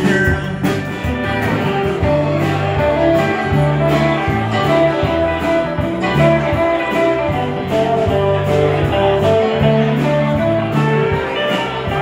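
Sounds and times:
drums keeping a steady beat: 0.0s - 12.0s
electric guitar: 0.0s - 12.0s
keyboard: 0.0s - 12.0s
live band playing: 0.0s - 12.0s.

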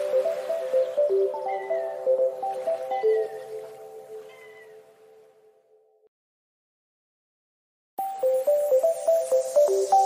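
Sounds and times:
held chord background music: 0.0s - 4.1s.

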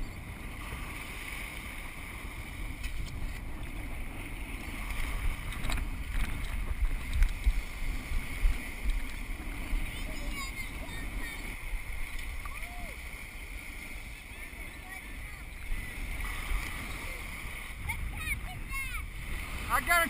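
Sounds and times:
small waves washing onto beach: 0.0s - 20.0s
wind buffeting microphone: 0.0s - 20.0s.

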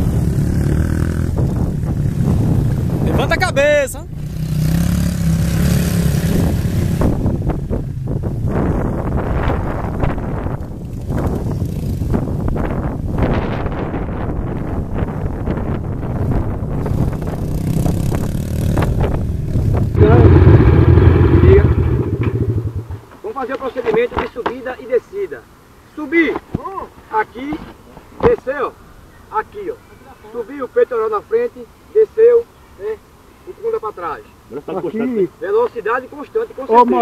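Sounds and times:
dirt bike engine running: 0.0s - 3.4s, 4.1s - 12.8s, 15.5s - 23.2s
loud close engine rumble: 16.9s - 23.2s.

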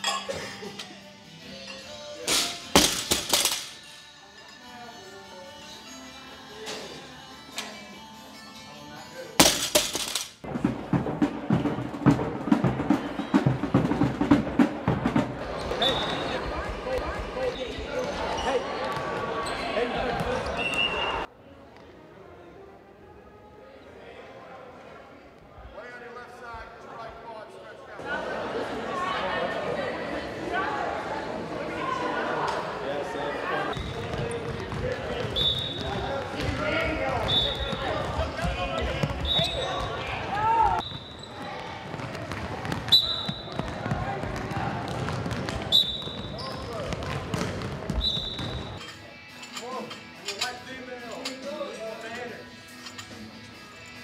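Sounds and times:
group talking in large hall: 0.0s - 54.0s
murmur of voices: 10.4s - 53.4s
sneakers squeaking on gym floor: 15.5s - 16.5s, 17.2s - 21.2s, 33.8s - 49.0s.

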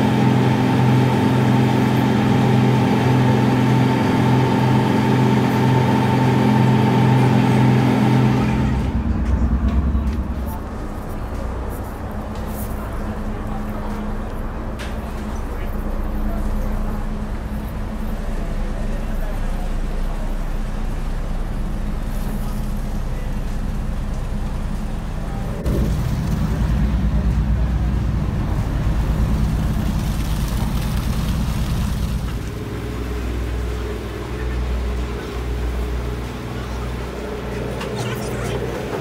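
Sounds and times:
ferry engine rumble: 0.0s - 39.0s.

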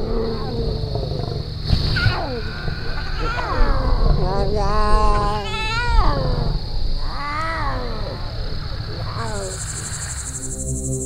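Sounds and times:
lion cubs mewing calls: 0.0s - 10.2s
insect trill: 0.0s - 11.0s.

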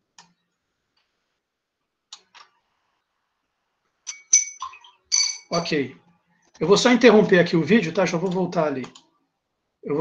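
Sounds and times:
high-pitched clinks: 4.1s - 5.7s.

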